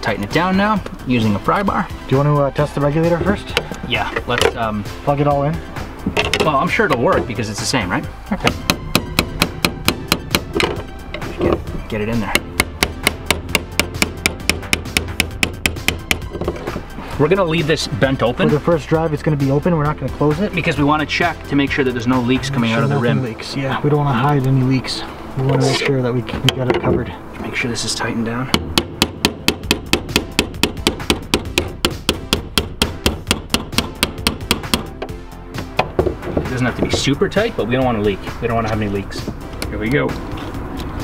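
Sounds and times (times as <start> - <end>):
music: 0.0 - 41.0.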